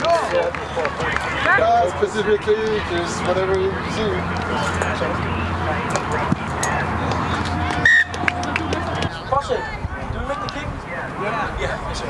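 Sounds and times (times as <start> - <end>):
murmur of voices: 0.0 - 12.0
referee's whistle blast: 7.8 - 8.2.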